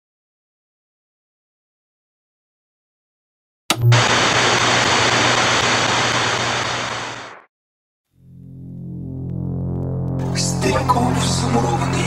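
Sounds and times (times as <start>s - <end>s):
loud static hiss: 3.9s - 7.5s
low electronic drone: 8.2s - 12.0s.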